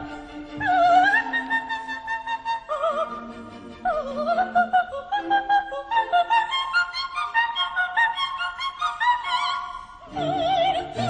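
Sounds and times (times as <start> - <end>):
classical music with high clear notes: 0.0 - 11.0.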